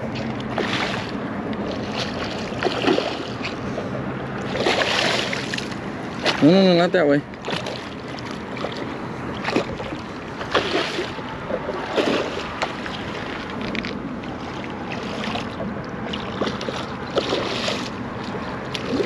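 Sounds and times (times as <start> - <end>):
water wash: 0.0 - 19.0.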